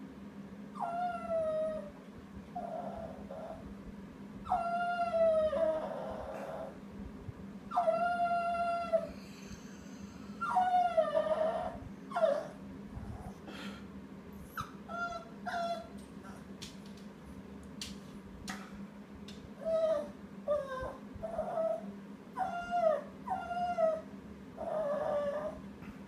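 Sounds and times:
small dog howling and whining: 0.8s - 3.7s, 4.4s - 6.8s, 7.7s - 9.2s, 10.4s - 13.4s, 14.4s - 16.4s, 19.6s - 25.7s
dog yelping: 14.5s - 16.4s.

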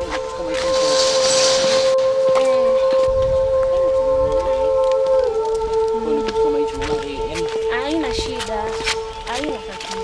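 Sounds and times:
held synthesizer note: 0.0s - 6.7s.

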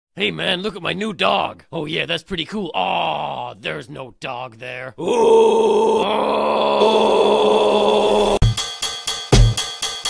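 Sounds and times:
cartoon characters screaming: 5.0s - 8.4s.

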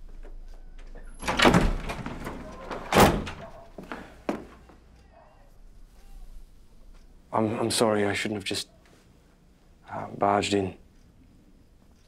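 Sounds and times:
door banging: 1.1s - 4.5s
door rush of sound: 1.2s - 3.6s.

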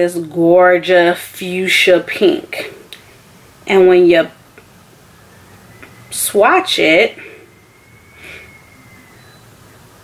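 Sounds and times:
soft breath through the nose: 7.2s - 8.6s.

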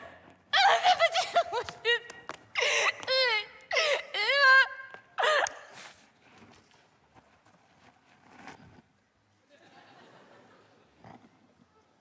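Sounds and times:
woman comic sobbing: 0.6s - 5.7s.

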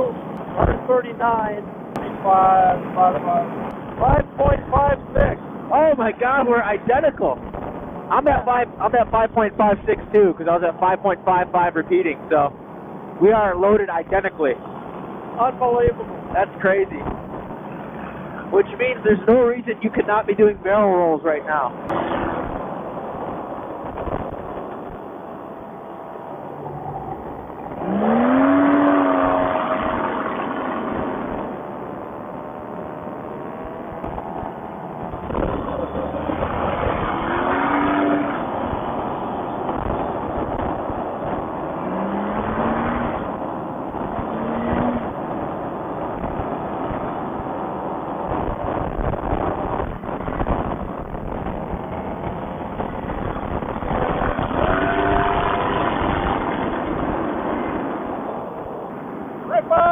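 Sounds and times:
paramotor engine and propeller: 11.8s - 59.6s
rush of air: 33.4s - 59.5s.

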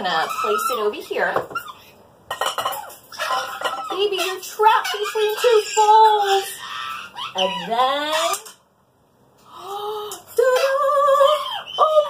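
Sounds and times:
glass bowls clinking on table: 2.3s - 4.1s
wooden spoons rattling on glass: 2.3s - 5.6s.

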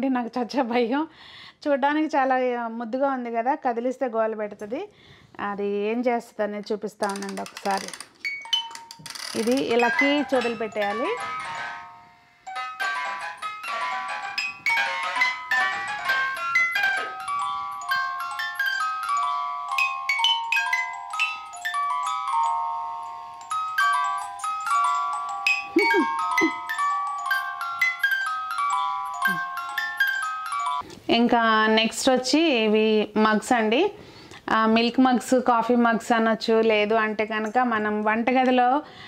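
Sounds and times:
music box melody: 7.8s - 30.8s.

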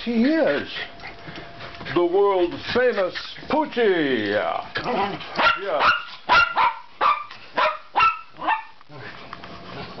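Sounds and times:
dog barking sharply: 5.4s - 8.8s.

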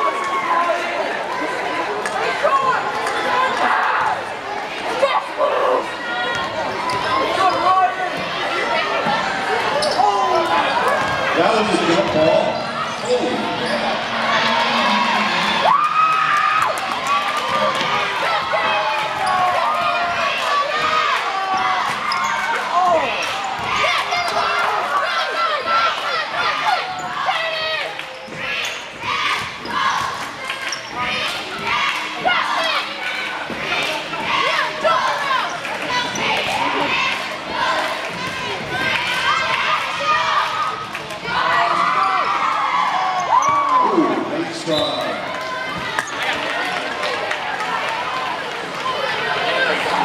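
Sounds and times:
crowd talking and calling out: 0.0s - 50.0s.

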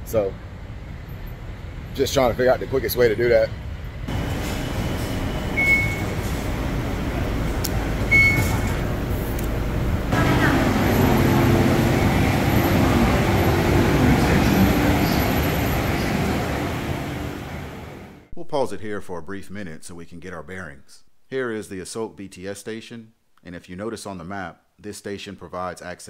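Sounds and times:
train pulling into platform: 0.0s - 18.3s
station hubbub: 1.5s - 18.3s
low motor hum: 4.0s - 18.3s
short high beeps: 5.6s - 6.2s, 8.1s - 8.8s.

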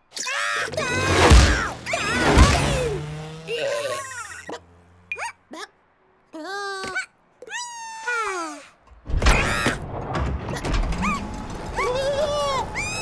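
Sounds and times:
cartoon chicks squeaking: 0.2s - 5.7s, 11.8s - 13.0s.

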